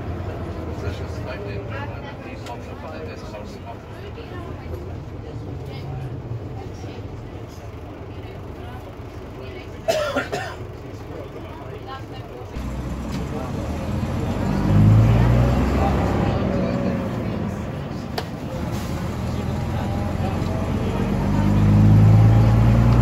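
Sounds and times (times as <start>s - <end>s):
bus diesel engine rumble: 0.0s - 23.0s.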